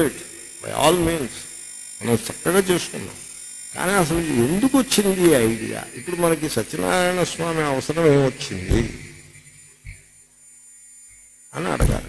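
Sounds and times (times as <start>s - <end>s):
faint high-pitched whine: 0.0s - 10.1s
electrical hum: 0.0s - 12.0s
soft low thump: 8.6s - 10.1s.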